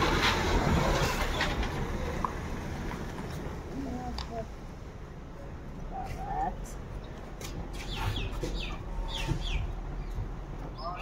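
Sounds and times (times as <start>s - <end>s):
birds chirping: 5.9s - 11.0s.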